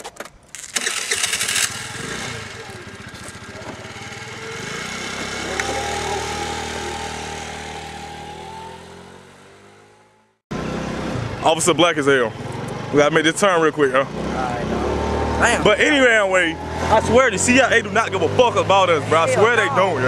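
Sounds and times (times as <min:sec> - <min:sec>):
moped engine starting and pulling away: 0:00.6 - 0:13.2, 0:13.8 - 0:20.0.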